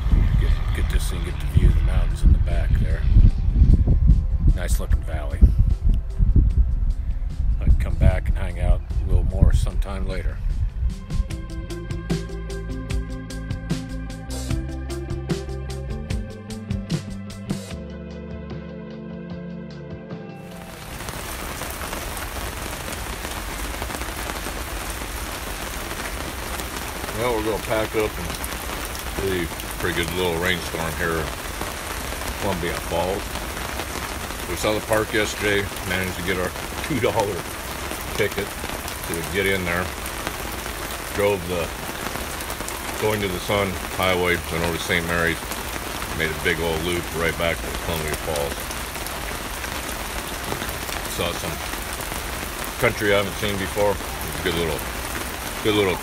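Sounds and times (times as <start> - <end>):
steady rain falling: 0.0 - 3.4, 20.4 - 56.0.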